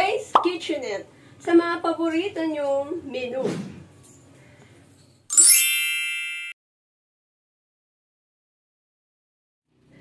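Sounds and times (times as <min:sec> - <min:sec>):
bright chime ding: 0:05.3 - 0:06.6.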